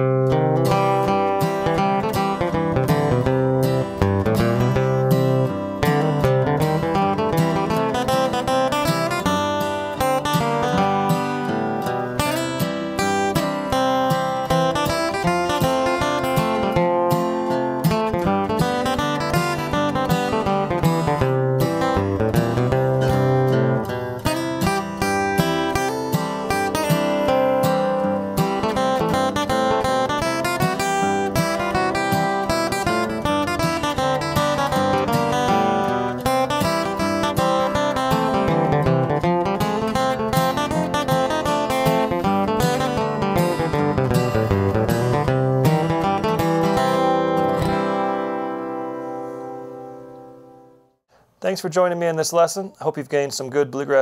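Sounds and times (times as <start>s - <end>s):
backing rhythm track: 0.0s - 48.3s
acoustic guitar flatpicking: 0.0s - 51.4s.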